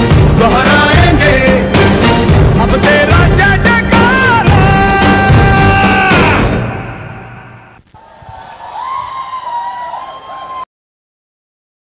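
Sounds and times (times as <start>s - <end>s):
stage show music: 0.0s - 7.7s
audience cheering and whistling: 8.0s - 10.7s.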